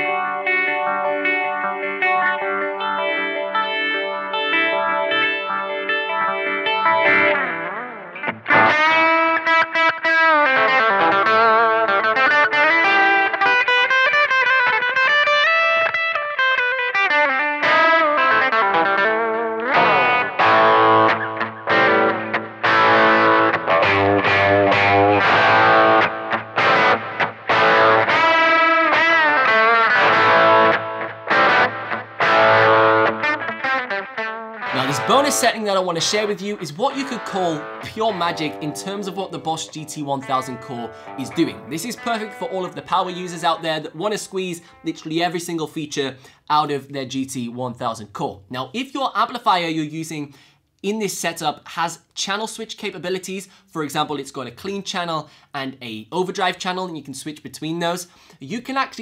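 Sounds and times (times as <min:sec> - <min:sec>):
electric guitar through valve amp: 0:00.0 - 0:45.1
distorted guitar riffs: 0:00.0 - 0:46.8.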